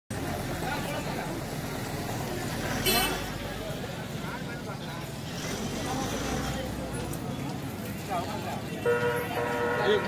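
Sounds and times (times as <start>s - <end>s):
crowd chatter: 0.1s - 10.0s
passing traffic: 0.1s - 10.0s.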